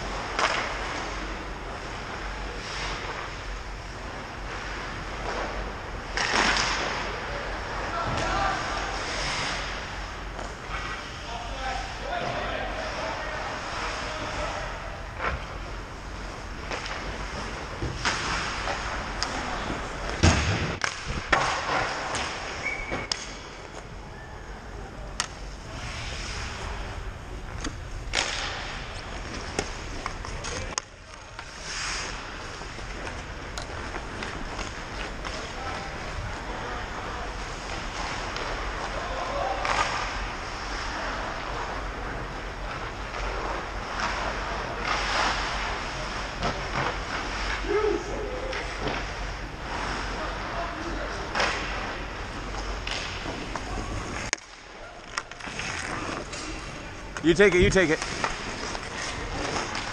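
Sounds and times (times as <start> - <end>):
sticks and puck clacking: 0.1 - 2.2, 4.5 - 11.2, 16.6 - 24.0, 25.1 - 26.9, 27.5 - 47.6, 51.1 - 59.9
skates scraping ice: 12.0 - 23.8, 27.7 - 59.9.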